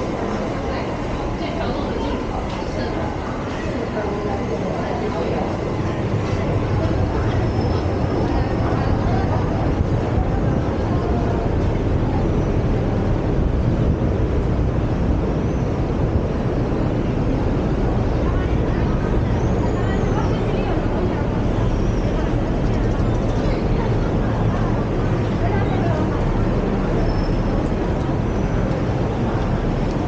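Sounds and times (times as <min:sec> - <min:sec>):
passers-by talking: 0:00.0 - 0:30.0
road traffic: 0:00.0 - 0:30.0.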